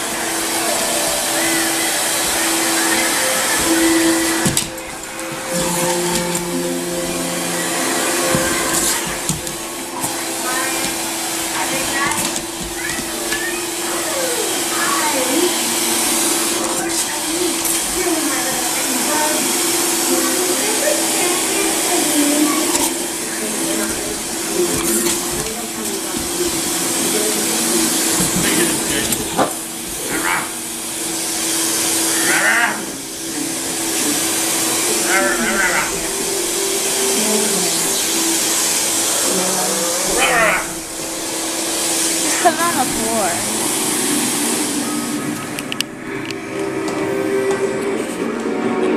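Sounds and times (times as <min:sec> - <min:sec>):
vacuum cleaner running: 0:00.0 - 0:48.9.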